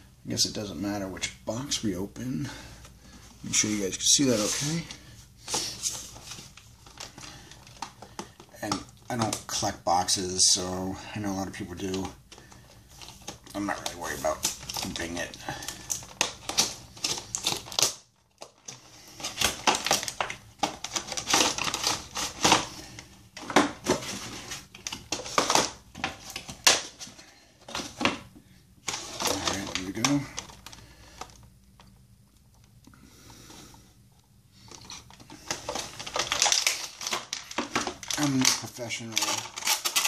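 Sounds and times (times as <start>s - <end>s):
packaging crinkling and rustling: 2.7s - 32.8s, 34.6s - 40.0s.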